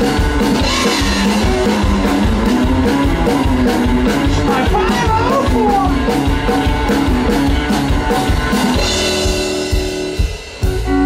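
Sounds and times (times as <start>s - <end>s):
rockabilly band music: 0.0s - 11.0s
person singing: 0.6s - 1.8s, 3.3s - 6.1s.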